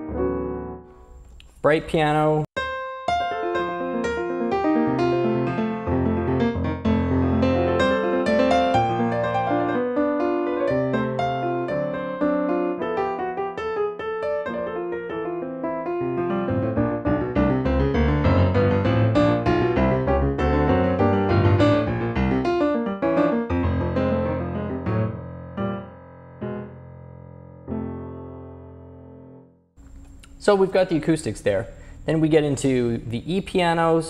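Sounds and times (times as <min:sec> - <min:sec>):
piano chords and runs: 0:00.0 - 0:01.3, 0:02.6 - 0:30.3.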